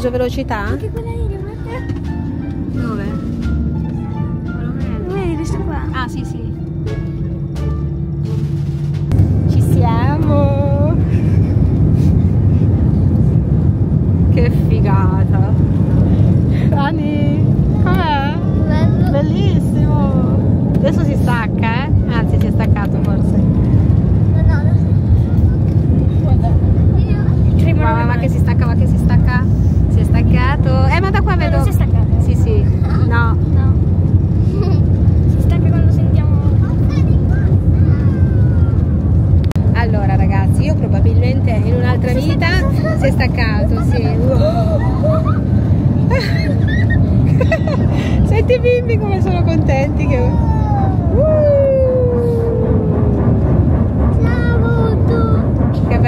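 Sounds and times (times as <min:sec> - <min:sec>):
jet engines roaring: 0:00.0 - 0:56.0
voices in cabin: 0:00.0 - 0:56.0.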